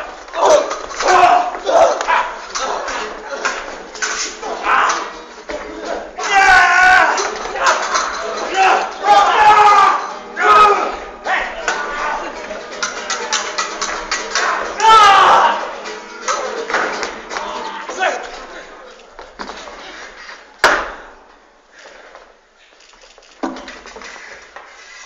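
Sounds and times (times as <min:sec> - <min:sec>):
people shouting and crying out: 0:00.0 - 0:20.2.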